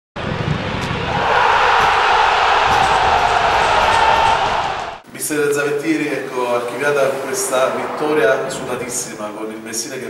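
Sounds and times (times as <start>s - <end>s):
large crowd cheering: 0.2s - 5.0s.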